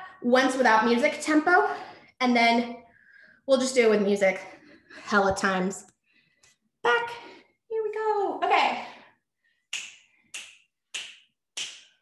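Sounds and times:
finger snaps: 9.7 - 12.0.

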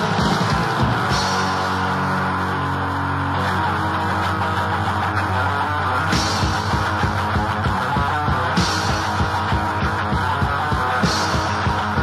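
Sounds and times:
distorted guitar and bass: 0.0 - 12.0
drums: 0.0 - 12.0.

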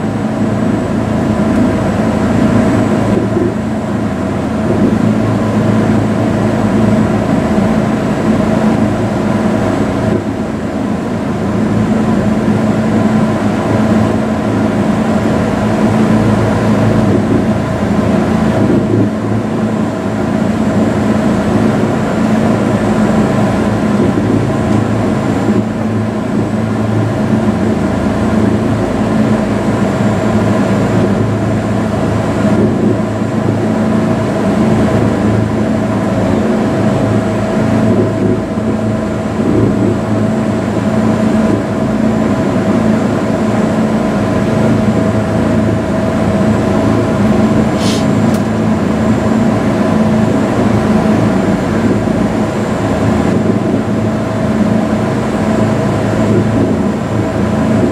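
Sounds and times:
elevator car mechanical hum: 0.0 - 57.9.

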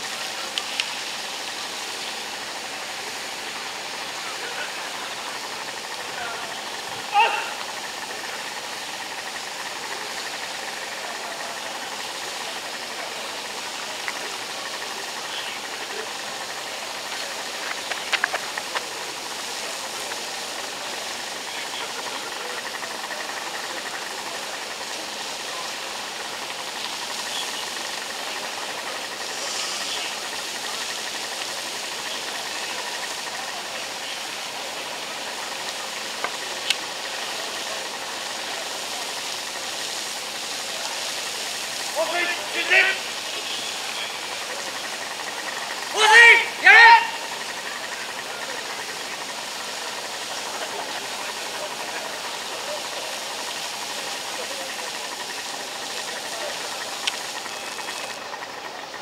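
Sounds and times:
fire hose stream hissing: 0.0 - 59.0
portable pump engine running: 0.0 - 59.0.

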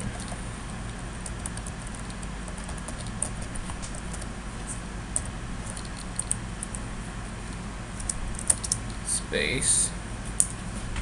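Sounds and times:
keyboard typing: 0.0 - 4.3, 5.1 - 6.8, 8.0 - 8.8
steady low hum: 0.0 - 11.0.

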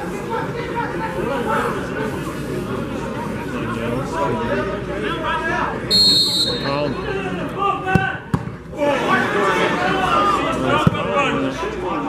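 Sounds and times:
spectators talking: 0.0 - 12.0
referee's whistle blast: 5.9 - 6.8.

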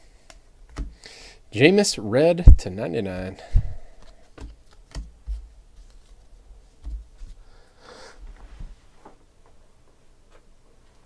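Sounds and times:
noisy breath: 0.0 - 1.5, 3.4 - 4.4, 7.3 - 8.8.

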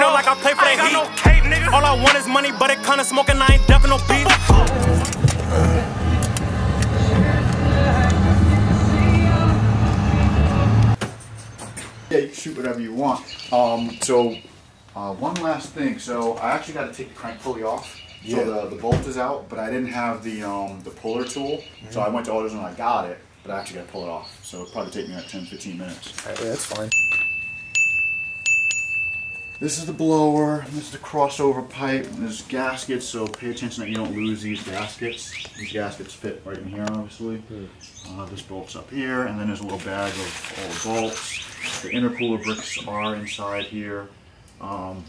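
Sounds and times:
car engine droning: 3.8 - 11.0
bell-like metallic ring: 26.9 - 30.2.

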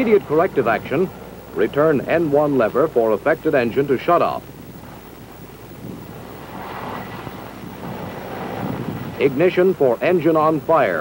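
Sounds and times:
helicopter turbine engines rushing: 0.0 - 11.0.

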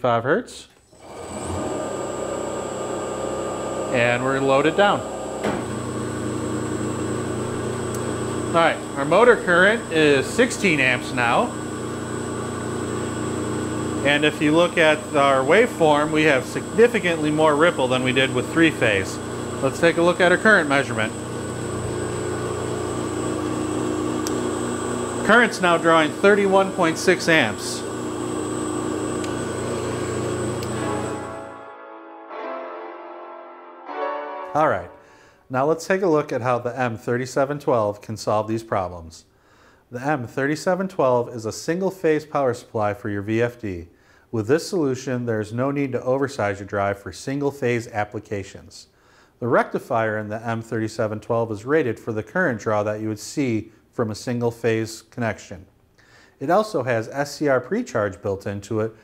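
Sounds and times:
electric motors humming: 0.9 - 31.6
thin high whine: 13.4 - 31.7.

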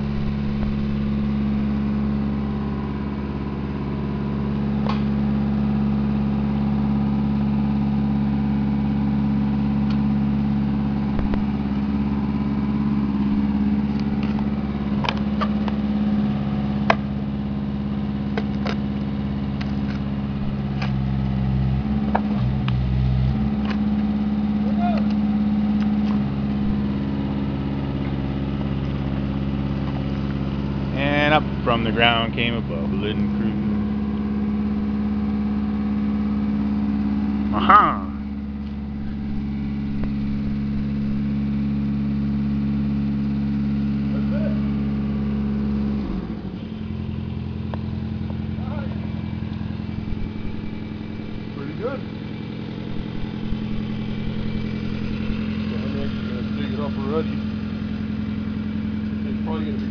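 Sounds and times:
drill rig engine running: 0.0 - 59.9.

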